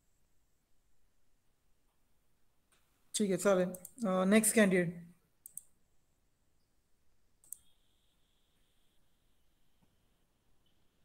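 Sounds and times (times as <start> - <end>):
faint sharp clicks: 3.7 - 4.0, 5.4 - 5.7, 7.4 - 7.7
faint high steady tone: 6.4 - 11.0.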